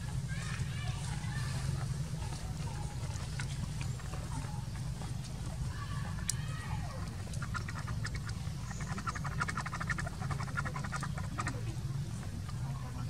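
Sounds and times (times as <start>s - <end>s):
animal clicking call: 2.6s - 11.8s.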